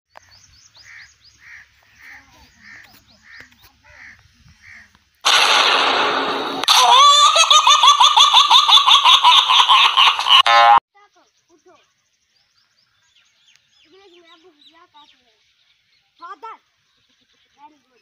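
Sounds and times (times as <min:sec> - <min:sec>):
loud laughter: 0:06.1 - 0:10.8.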